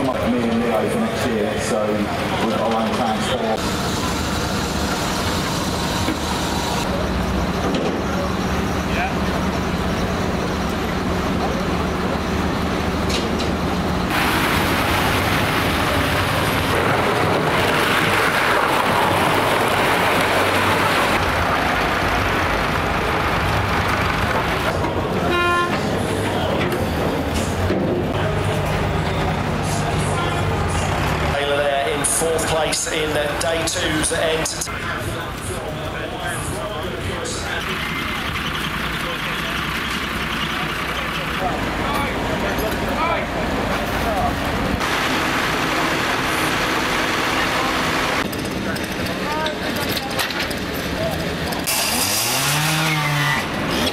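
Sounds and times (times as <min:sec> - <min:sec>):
vehicle engines running: 0:00.0 - 0:53.9
short horn toot: 0:25.2 - 0:25.9.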